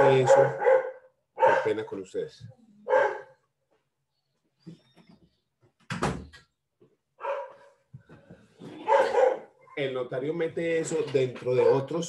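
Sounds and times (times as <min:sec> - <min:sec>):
dog barking: 0:00.0 - 0:01.9, 0:02.8 - 0:03.4, 0:07.2 - 0:07.8, 0:08.8 - 0:09.7, 0:11.5 - 0:12.0.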